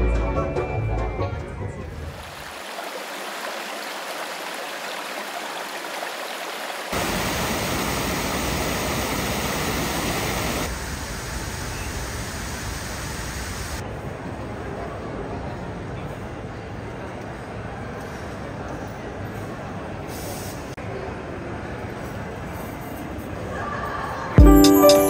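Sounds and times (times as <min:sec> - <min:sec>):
small waterfall splashing over rocks: 0:02.0 - 0:10.7.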